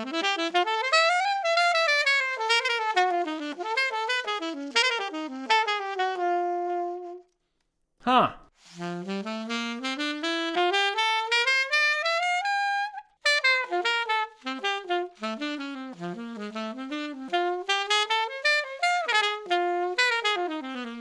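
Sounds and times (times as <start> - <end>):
alto saxophone jazz line: 0.0 - 7.4, 8.6 - 21.0.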